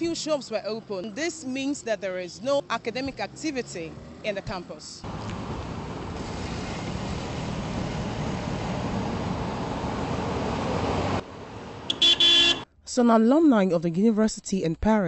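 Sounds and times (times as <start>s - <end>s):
passing cars: 0.0s - 12.6s
car horn toot: 11.9s - 12.7s.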